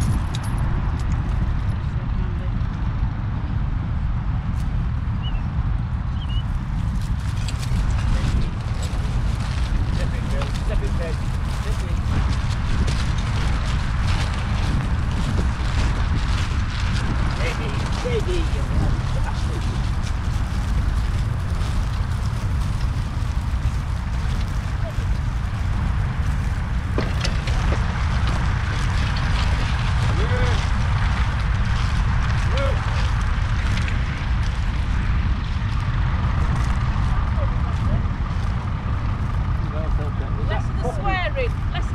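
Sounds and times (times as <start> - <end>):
wind buffeting microphone: 0.0 - 41.9
crunching footfalls on stubble: 6.4 - 40.0
voices: 9.8 - 16.0, 16.6 - 22.4, 23.6 - 31.4, 32.2 - 33.4, 39.5 - 41.9.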